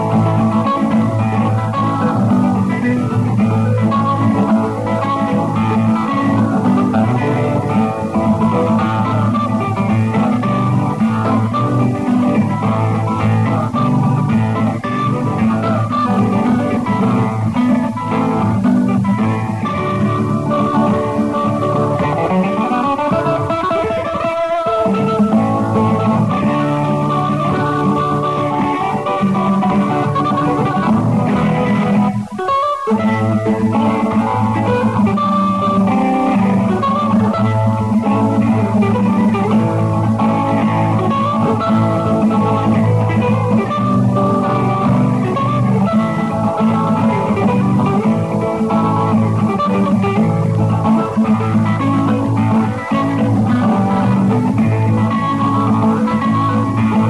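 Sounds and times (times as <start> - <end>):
plucked guitar music: 0.0 - 57.0.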